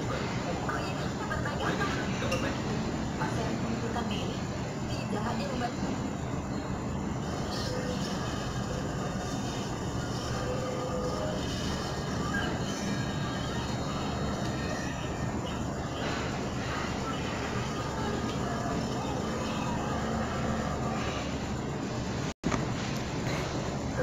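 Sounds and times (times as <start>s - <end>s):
faint voices: 0.0s - 22.3s.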